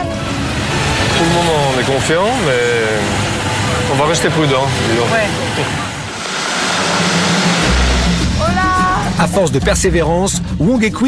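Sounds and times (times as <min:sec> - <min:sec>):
car road noise: 0:00.0 - 0:10.6
background music with deep bass: 0:00.0 - 0:11.0.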